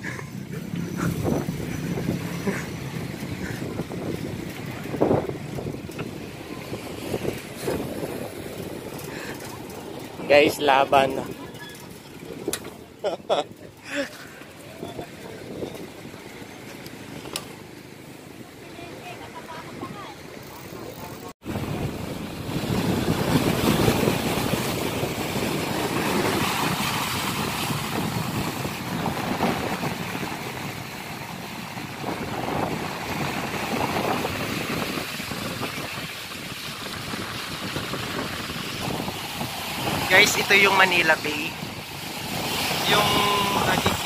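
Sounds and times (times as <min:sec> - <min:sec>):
wind on microphone: 0:00.0 - 0:12.9, 0:20.8 - 0:44.0
water splashing against seawall: 0:14.0 - 0:44.0.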